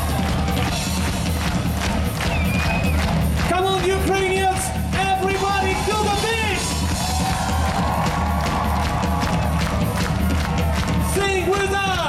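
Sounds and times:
drum-kit beat: 0.0s - 12.0s.

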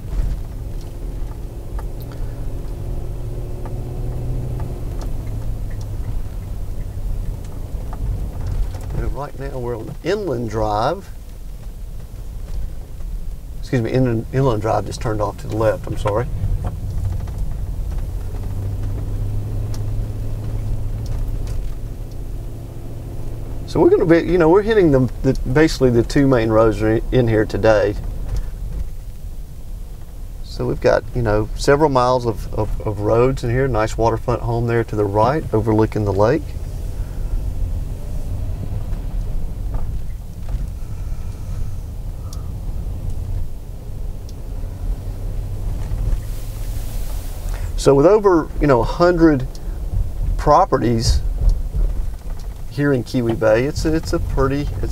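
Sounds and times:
car engine and tyre drone: 0.0s - 54.9s.

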